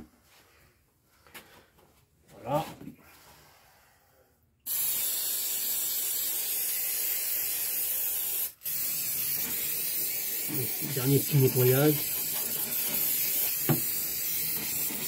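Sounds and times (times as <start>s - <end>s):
aerosol spray hissing: 4.7s - 15.0s.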